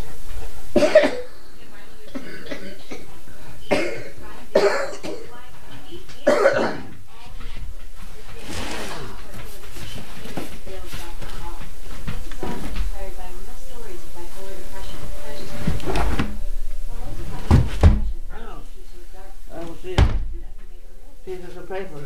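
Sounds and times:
elderly person coughing: 0:00.8 - 0:01.4, 0:02.1 - 0:05.4, 0:06.2 - 0:06.9.

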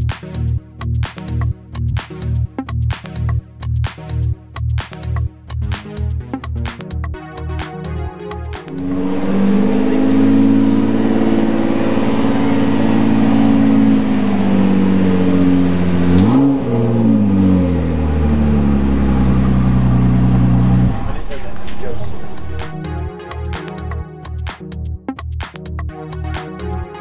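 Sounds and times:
car engine idling and revving: 0:08.7 - 0:23.0.

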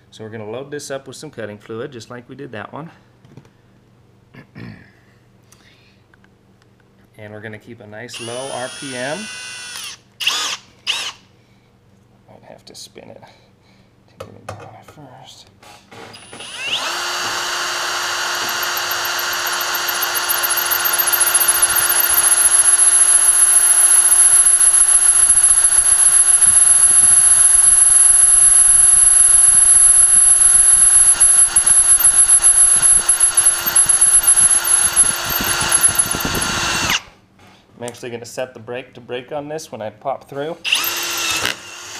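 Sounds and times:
drill motor whining under load: 0:08.2 - 0:11.2, 0:16.2 - 0:37.1, 0:40.7 - 0:41.9
high whine of cutter in steel: 0:16.2 - 0:37.1.

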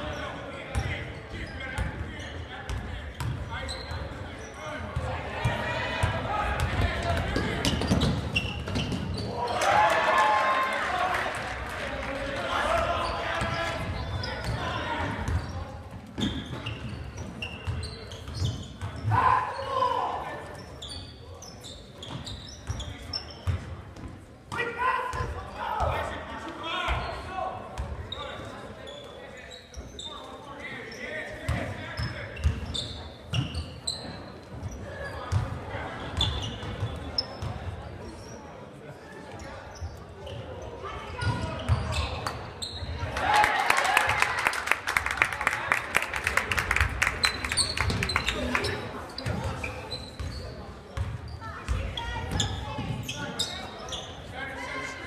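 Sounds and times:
sneaker squeaks: 0:00.0 - 0:05.1, 0:06.6 - 0:09.6, 0:12.9 - 0:25.9, 0:26.8 - 0:38.6, 0:39.3 - 0:43.1, 0:47.0 - 0:55.0.

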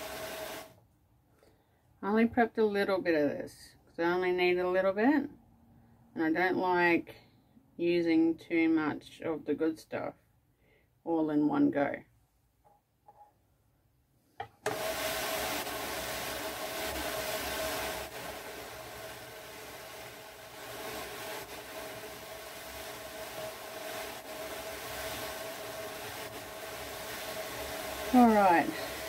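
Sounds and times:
drum carder whirring hiss: 0:00.0 - 0:00.8, 0:14.5 - 0:29.0.

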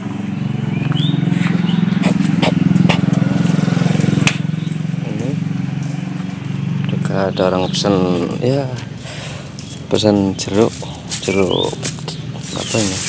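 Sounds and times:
small engine running: 0:00.0 - 0:13.0.

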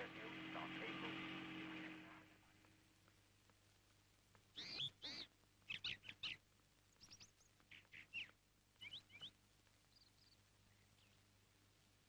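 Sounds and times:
faint birds chirping: 0:00.0 - 0:12.0.

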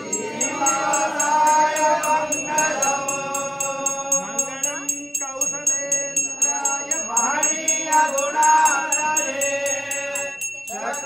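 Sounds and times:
brass hand bell ringing: 0:00.0 - 0:11.0
voices singing or chanting together: 0:00.0 - 0:11.0.

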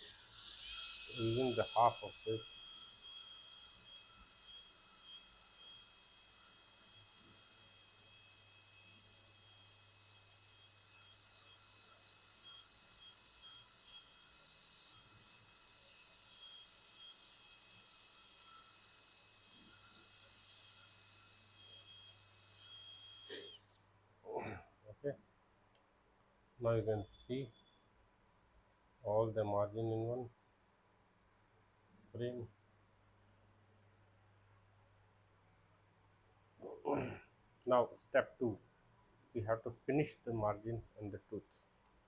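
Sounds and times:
dental drill whining: 0:00.0 - 0:23.8.

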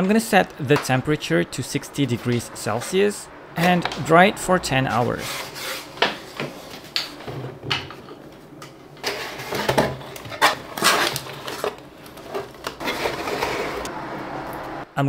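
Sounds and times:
cardboard box scraping: 0:09.0 - 0:13.9.

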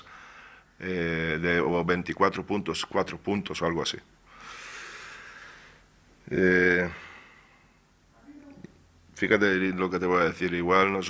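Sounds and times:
man breathing out: 0:04.3 - 0:05.9.

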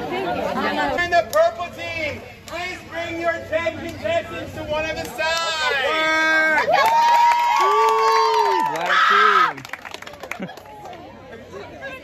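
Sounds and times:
crowd chatter: 0:00.0 - 0:06.8, 0:08.4 - 0:12.0
teenagers cheering and yelling: 0:05.2 - 0:09.7.

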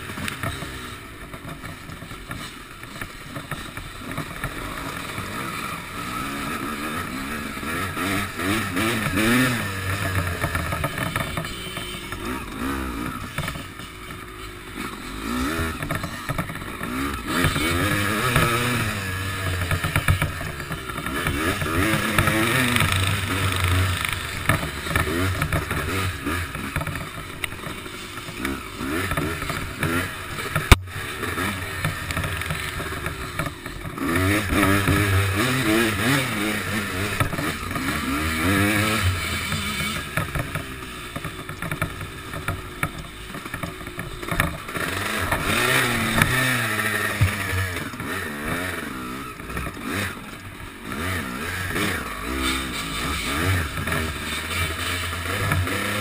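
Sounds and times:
motocross engine revving: 0:00.0 - 0:56.0.

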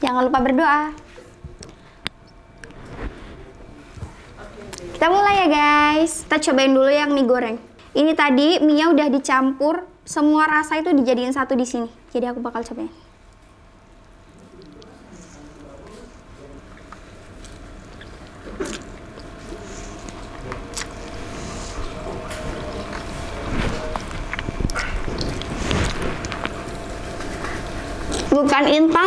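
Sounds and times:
chewing and wet mouth clicks: 0:14.0 - 0:15.0, 0:16.7 - 0:23.2, 0:23.9 - 0:26.5.

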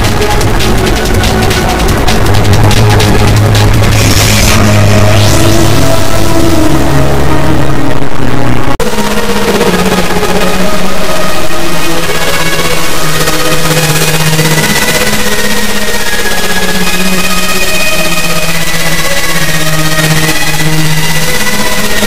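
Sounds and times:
distorted electronic beat: 0:00.0 - 0:22.0
synth line: 0:00.0 - 0:22.0.

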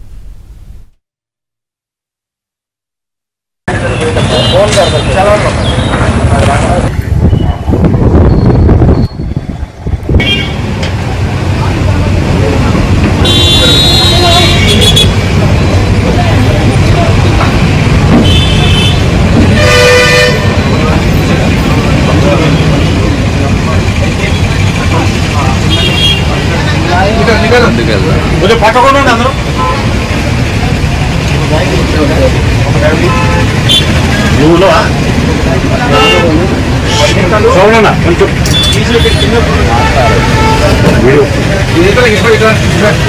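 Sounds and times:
traffic engine rumble: 0:03.7 - 0:43.0
vehicle horns honking: 0:03.8 - 0:06.1, 0:10.2 - 0:10.7, 0:13.2 - 0:15.2, 0:18.1 - 0:21.1, 0:25.6 - 0:26.5, 0:29.4 - 0:30.1, 0:32.9 - 0:34.1, 0:35.8 - 0:37.5, 0:38.4 - 0:41.2.

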